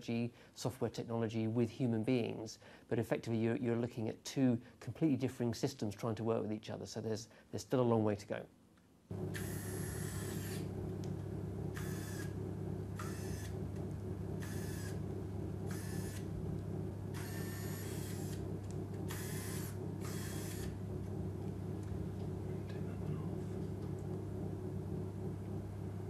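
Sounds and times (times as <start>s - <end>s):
steady low hum: 9.0s - 26.0s
bionic hand motors whirring: 9.3s - 10.7s, 11.8s - 12.4s, 13.0s - 13.6s, 14.4s - 15.0s, 15.7s - 16.3s, 17.1s - 18.4s, 19.1s - 20.8s.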